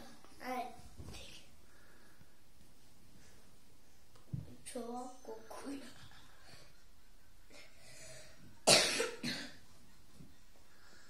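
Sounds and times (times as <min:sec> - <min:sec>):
person coughing: 0:08.6 - 0:09.6.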